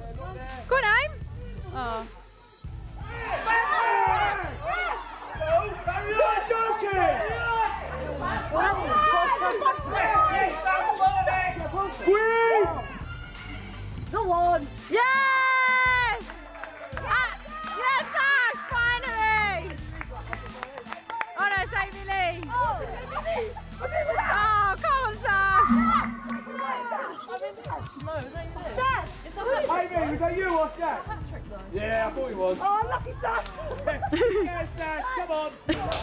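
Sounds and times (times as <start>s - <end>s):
pop music with singing: 0.0s - 36.0s.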